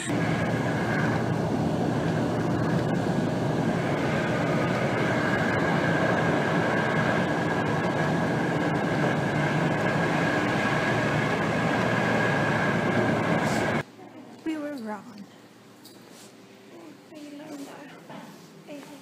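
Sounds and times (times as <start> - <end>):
bus engine and road noise: 0.0 - 13.8
steady high whine: 0.0 - 14.0.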